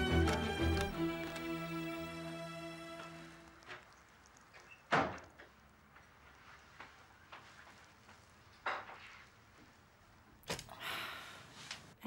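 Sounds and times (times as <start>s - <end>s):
background music: 0.0s - 3.6s
soft footsteps: 5.2s - 10.1s.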